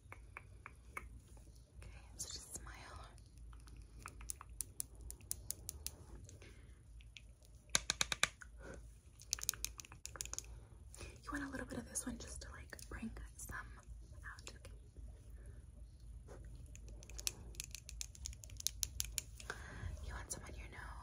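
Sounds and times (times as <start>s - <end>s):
makeup brush tapping plastic palette: 7.7s - 8.4s.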